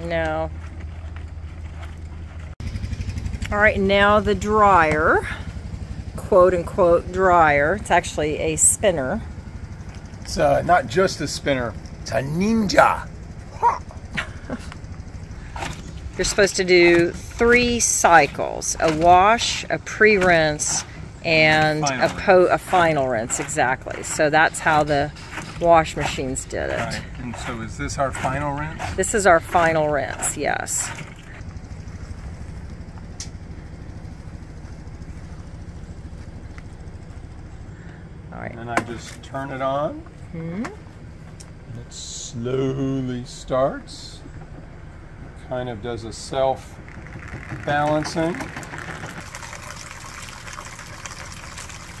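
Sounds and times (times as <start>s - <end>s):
steady low hum: 0.0s - 48.5s.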